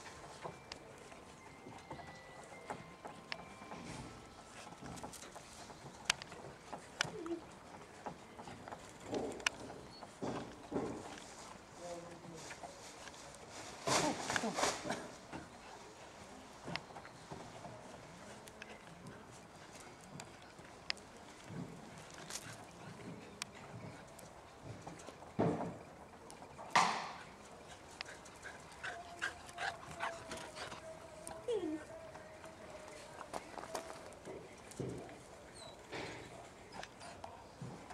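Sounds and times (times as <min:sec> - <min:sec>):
puppies stepping on wood: 0:00.0 - 0:11.8
puppies scuffling: 0:00.0 - 0:37.9.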